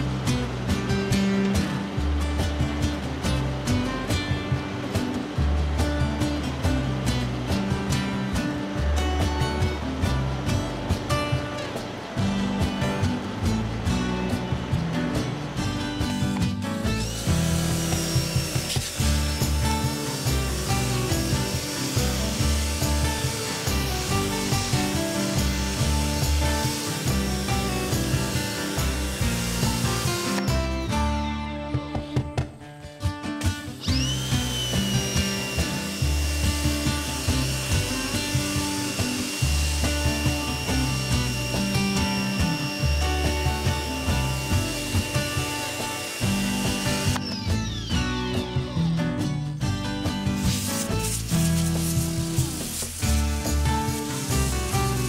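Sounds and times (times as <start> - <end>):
background music: 0.0 - 55.0
pressure washer whine: 16.8 - 30.7, 33.7 - 48.4, 50.4 - 55.0.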